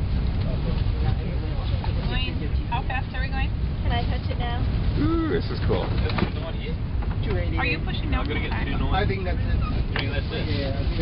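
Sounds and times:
train rumbling: 0.0 - 11.0
voices: 0.4 - 11.0.

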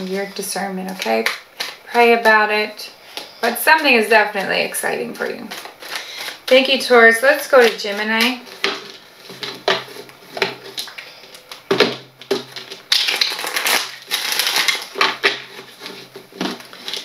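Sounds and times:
cards shuffling: 3.2 - 17.0
cards tapping and slapping: 7.6 - 17.0.

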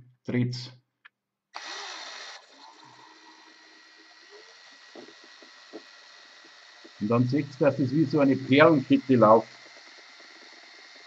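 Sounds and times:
cordless drill motor running: 1.6 - 11.0.

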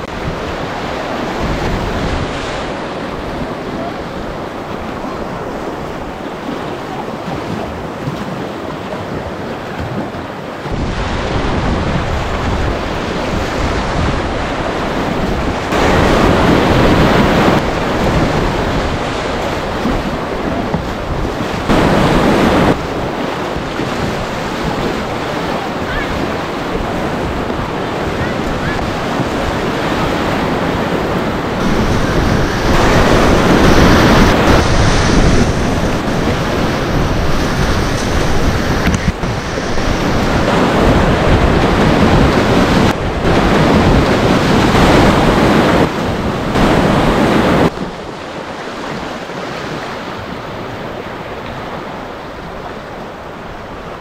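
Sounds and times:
whitewater rapids rushing: 0.0 - 54.0
wind buffeting microphone: 0.0 - 54.0.

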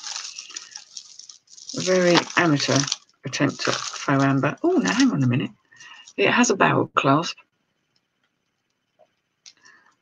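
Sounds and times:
plastic beads clicking and rattling: 0.0 - 5.2, 5.8 - 6.2.

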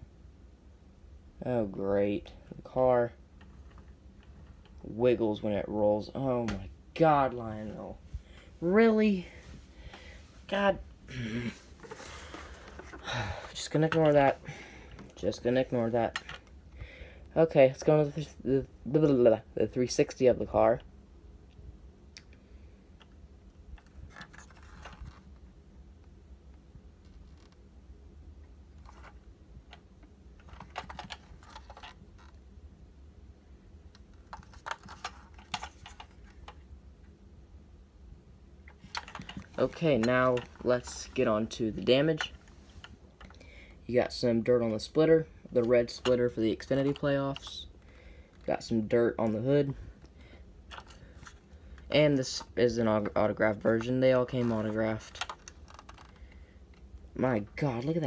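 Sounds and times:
low steady hum: 0.0 - 58.0
person speaking: 1.4 - 3.3, 4.6 - 16.6, 17.3 - 20.9, 38.8 - 56.2, 57.0 - 58.0
clicks and rustles of handling: 3.4 - 4.9, 11.7 - 16.8, 23.0 - 25.4, 28.7 - 32.4, 33.9 - 37.2, 38.6 - 43.5, 44.6 - 58.0.

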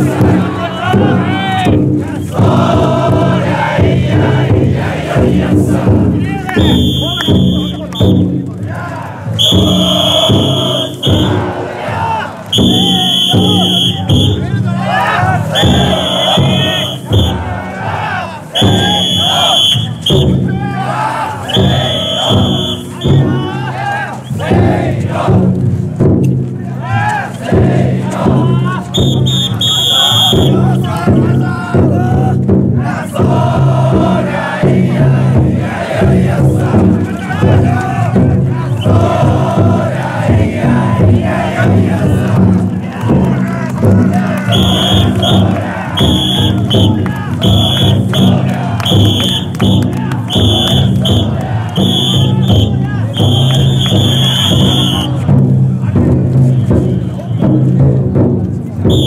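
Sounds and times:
men shouting in chorus: 0.0 - 8.0, 8.6 - 25.1, 26.7 - 55.3
big drum beating: 0.0 - 59.0
shrill whistle blasts: 6.6 - 8.3, 9.4 - 11.4, 12.5 - 14.5, 15.5 - 17.4, 18.6 - 20.4, 21.4 - 23.5, 28.9 - 30.9, 44.5 - 55.2.

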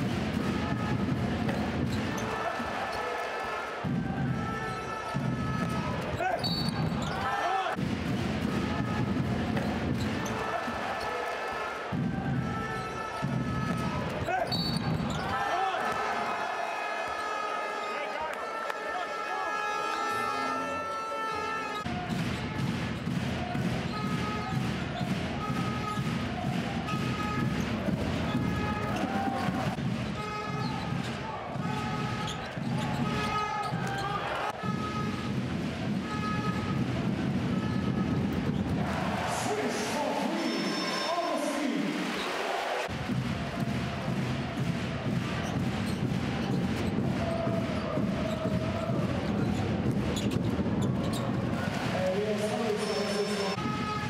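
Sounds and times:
crowd voices: 0.0 - 54.0.

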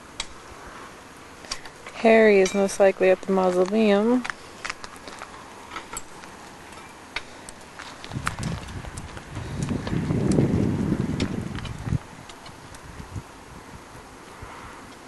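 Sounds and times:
wind buffeting microphone: 7.8 - 14.8.

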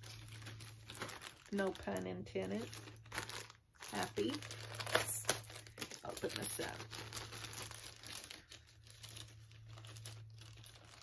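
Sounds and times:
packaging crinkling: 0.0 - 11.0.

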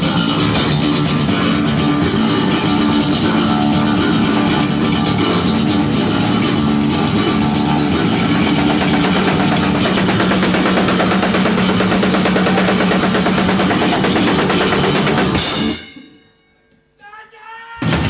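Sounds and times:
electric bass guitar: 0.0 - 15.9
drum kit: 0.0 - 16.2, 17.8 - 18.0.

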